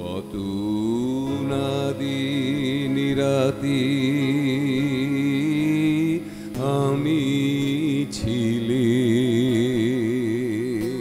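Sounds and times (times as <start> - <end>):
sustained instrumental drone: 0.0 - 11.0.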